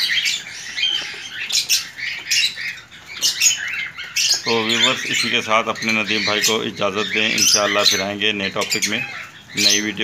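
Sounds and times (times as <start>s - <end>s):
birds chirping and chattering: 0.0s - 10.0s.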